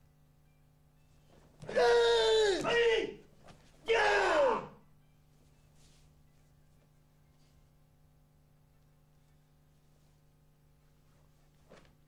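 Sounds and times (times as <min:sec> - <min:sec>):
faint steady hum: 0:00.0 - 0:12.0
man shouting kiai: 0:01.6 - 0:03.2, 0:03.8 - 0:04.8.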